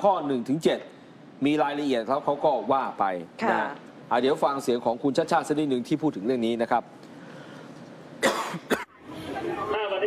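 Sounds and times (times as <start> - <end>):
person coughing: 8.2 - 9.0.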